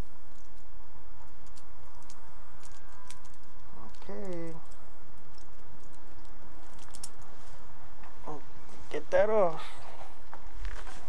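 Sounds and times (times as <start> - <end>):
steady low rumble: 0.0 - 11.0
leash clasp clicking and jingling: 1.4 - 7.3
person speaking: 3.8 - 4.8, 8.2 - 9.8.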